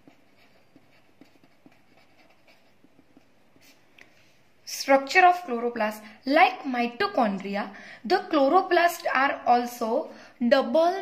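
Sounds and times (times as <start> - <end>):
pen scratching on paper: 0.0 - 3.8.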